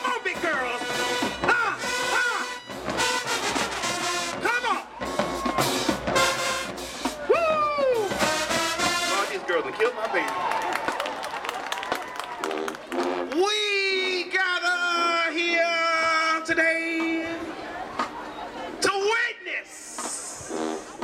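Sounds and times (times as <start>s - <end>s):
brass chords with falling notes: 0.0s - 7.3s, 8.0s - 9.6s, 12.4s - 14.0s, 20.2s - 21.0s
marching band playing: 0.0s - 21.0s.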